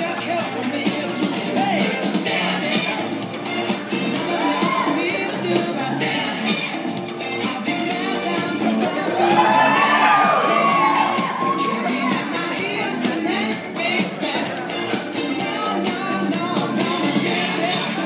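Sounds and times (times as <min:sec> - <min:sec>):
pop music with singing: 0:00.0 - 0:18.0
audience cheering and whooping: 0:04.3 - 0:05.1, 0:09.0 - 0:12.4.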